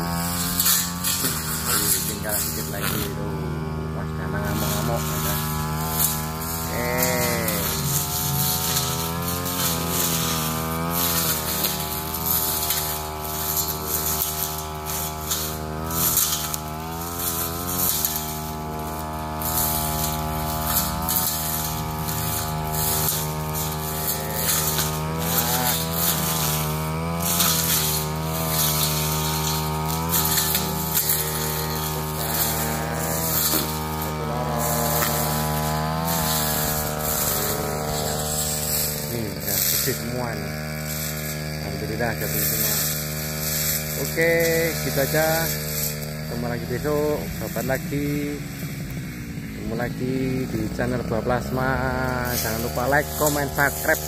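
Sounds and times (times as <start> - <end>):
brush cutter engine running: 0.0 - 54.0.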